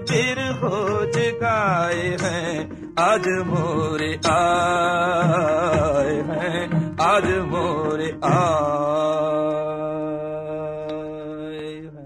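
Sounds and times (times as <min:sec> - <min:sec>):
man singing a long note: 0:00.0 - 0:12.0.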